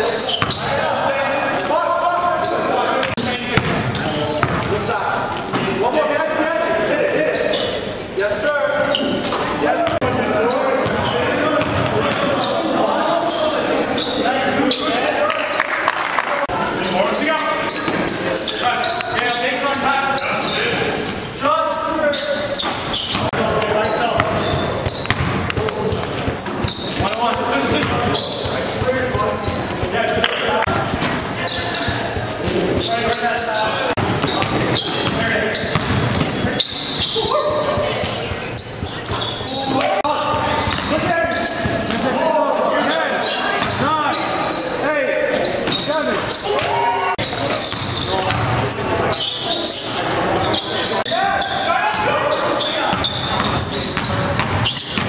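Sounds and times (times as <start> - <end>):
players calling out: 0.0 - 55.0
basketball bouncing: 0.2 - 0.7, 3.0 - 4.8, 10.8 - 12.5, 22.9 - 33.2, 34.0 - 42.0, 46.5 - 48.7, 52.9 - 55.0.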